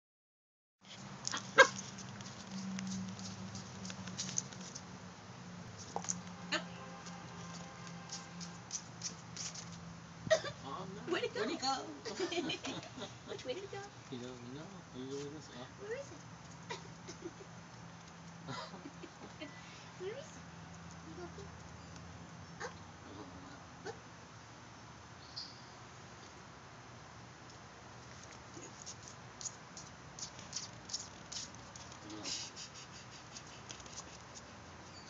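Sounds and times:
dog barking: 0:01.5 - 0:01.8.

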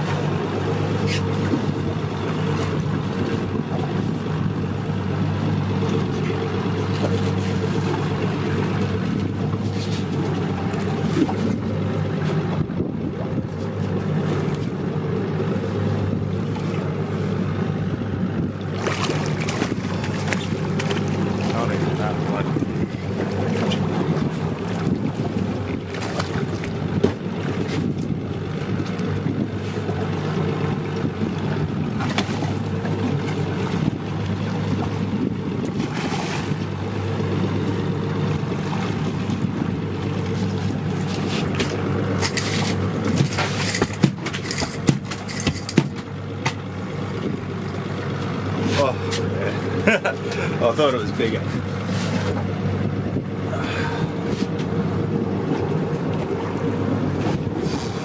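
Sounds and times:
outboard motor idling: 0:00.0 - 0:58.0
water noise: 0:00.0 - 0:58.0
wind: 0:00.0 - 0:58.0
fish thrashing splashes: 0:18.5 - 0:28.0, 0:31.9 - 0:35.0, 0:35.6 - 0:50.6.

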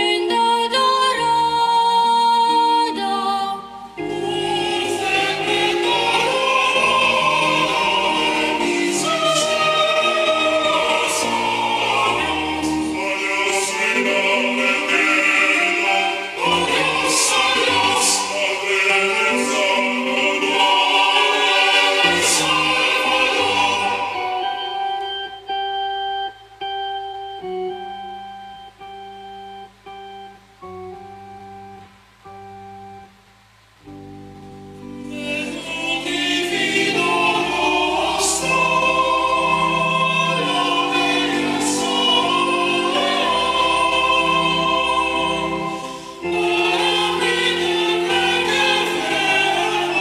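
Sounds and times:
organ playing held chords: 0:01.1 - 0:33.2, 0:33.9 - 0:50.0.

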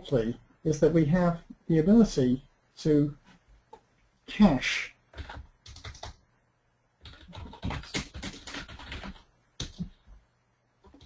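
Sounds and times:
typing on computer keyboard: 0:05.1 - 0:06.2, 0:07.0 - 0:10.0.

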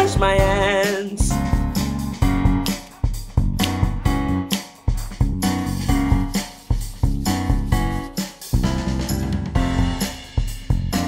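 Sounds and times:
guitar and bass backing music: 0:00.0 - 0:11.0.

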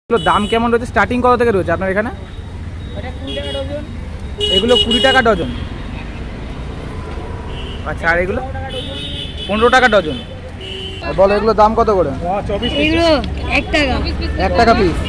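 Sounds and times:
traffic rumble: 0:00.1 - 0:15.0
vehicle horn toots: 0:04.4 - 0:05.7, 0:08.7 - 0:11.2
people talking: 0:04.5 - 0:05.6, 0:08.0 - 0:10.4, 0:11.0 - 0:15.0.

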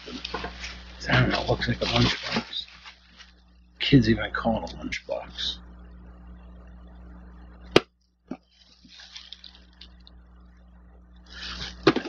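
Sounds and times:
plastic bag rustling: 0:00.0 - 0:03.4, 0:08.5 - 0:09.9
background hum: 0:00.0 - 0:12.0.

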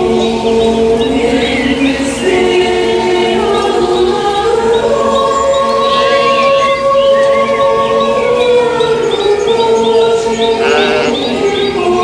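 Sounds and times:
choir holding long notes: 0:00.0 - 0:12.0.

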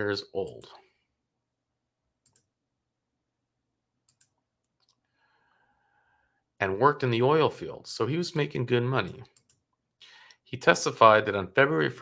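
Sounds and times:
computer mouse clicks: 0:02.2 - 0:02.5, 0:04.0 - 0:05.1, 0:09.0 - 0:09.8.

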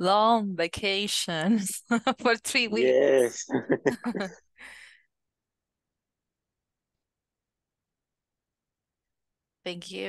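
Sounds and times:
person laughing: 0:03.2 - 0:04.4.

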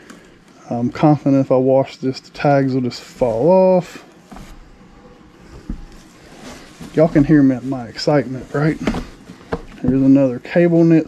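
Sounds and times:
faint steady hum: 0:00.0 - 0:11.0
sweaters moved in cardboard box: 0:05.4 - 0:10.6
dull thump: 0:05.5 - 0:06.0.

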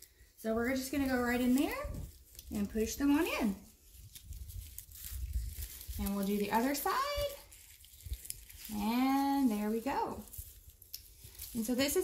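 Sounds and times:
rustling of flower stems: 0:00.0 - 0:12.0.

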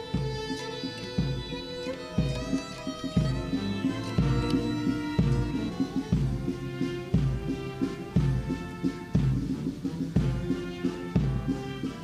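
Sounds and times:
bass drum beating: 0:00.0 - 0:12.0
military band playing slow march: 0:00.0 - 0:12.0.

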